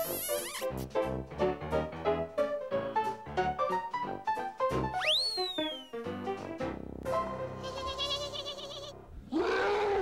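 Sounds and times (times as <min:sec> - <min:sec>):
music: 0:00.0 - 0:09.1
long monster roar: 0:09.3 - 0:10.0.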